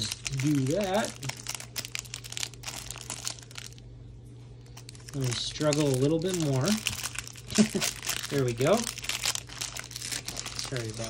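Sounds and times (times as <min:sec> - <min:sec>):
foil wrapper crinkling: 0:00.0 - 0:03.8, 0:04.6 - 0:11.0.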